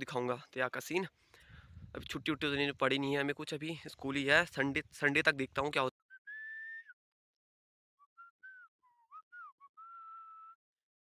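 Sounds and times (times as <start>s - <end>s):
person whistling a tune: 6.0s - 7.0s, 8.0s - 10.6s.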